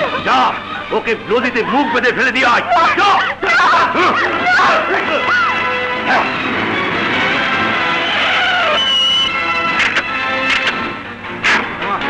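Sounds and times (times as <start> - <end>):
dramatic film score: 0.0 - 12.0
high screech: 7.8 - 10.7.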